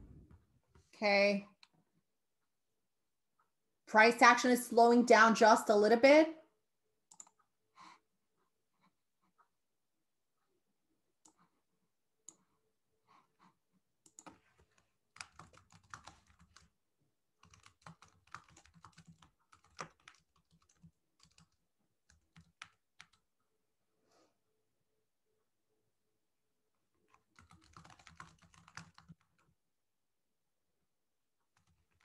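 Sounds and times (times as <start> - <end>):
typing on computer keyboard: 7.1 - 7.4, 14.0 - 16.8, 17.4 - 23.2, 27.1 - 29.5, 31.5 - 32.0.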